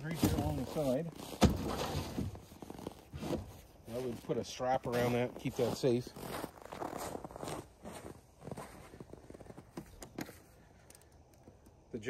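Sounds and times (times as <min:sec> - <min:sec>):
footsteps on snow: 0:00.0 - 0:10.6.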